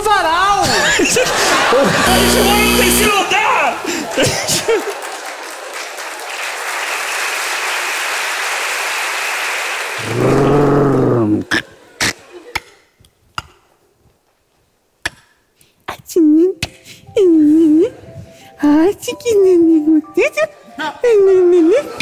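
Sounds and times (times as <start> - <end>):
audience applauding: 1.7 - 11.8
loud low held note: 2.1 - 3.1.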